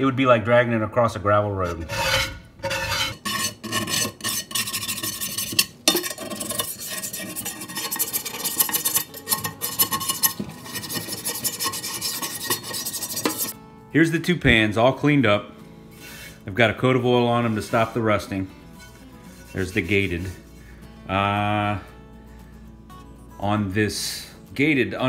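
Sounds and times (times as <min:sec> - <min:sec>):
brush scrubbing cast iron skillet: 0:01.6 - 0:13.6, 0:17.3 - 0:20.5.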